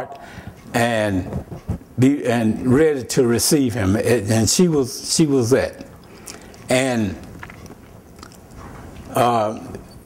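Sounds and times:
faint mouth clicks: 6.0s - 8.5s
man speaking: 6.7s - 7.2s, 9.1s - 9.8s.

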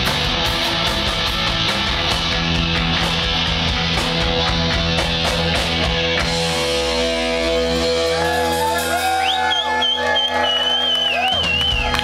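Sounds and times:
punk rock band chord ringing: 0.0s - 9.5s
crowd shouting and whooping: 7.2s - 12.0s.

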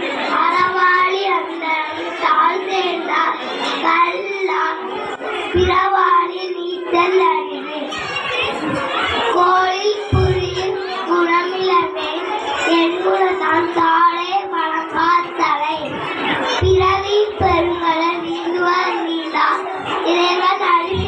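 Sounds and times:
boy singing into a microphone: 0.2s - 21.0s.

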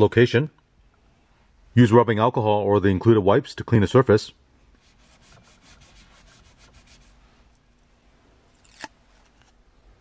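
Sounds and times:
wipe scrubbing plastic panel: 4.8s - 7.3s.

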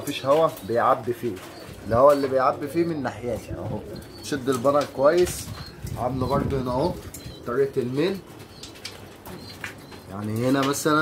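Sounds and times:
pigeons: 0.0s - 11.0s
wing flaps and rustles: 0.0s - 11.0s.

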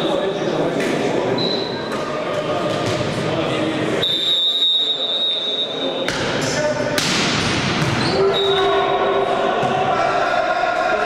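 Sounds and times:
players talking and calling out: 0.0s - 11.0s.

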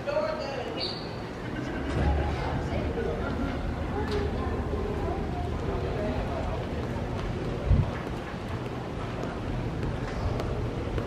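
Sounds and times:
wind buffeting microphone: 5.2s - 11.0s.

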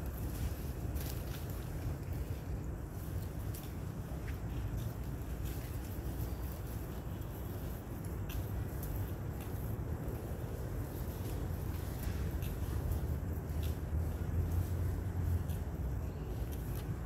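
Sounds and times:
low outdoor rumble: 0.0s - 17.0s.

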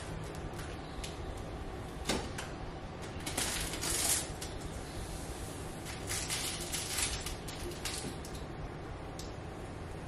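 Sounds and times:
plastic film peeling: 3.1s - 4.6s, 5.8s - 8.4s.

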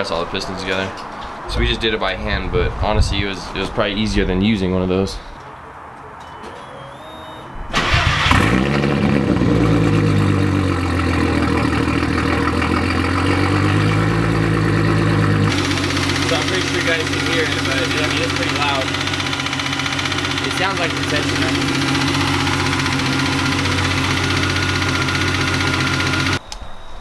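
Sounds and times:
car engine starting and idling: 6.4s - 26.4s
engine clicking: 7.7s - 26.4s.

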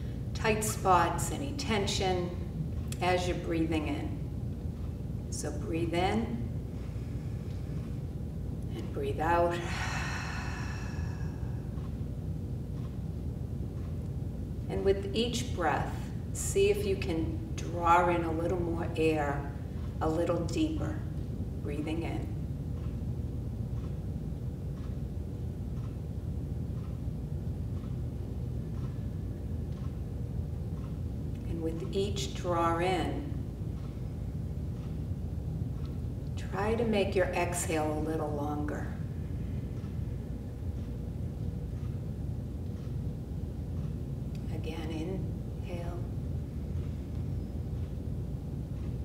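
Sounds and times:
low hall rumble: 0.0s - 49.0s
faint soft ticks: 24.7s - 25.0s, 25.7s - 26.0s, 28.8s - 29.0s.

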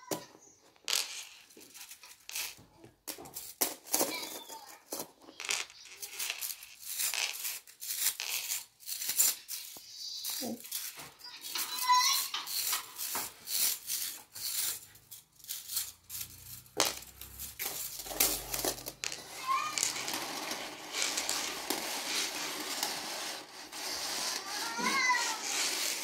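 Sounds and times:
plastic coils rattling and clicking: 5.4s - 26.0s.

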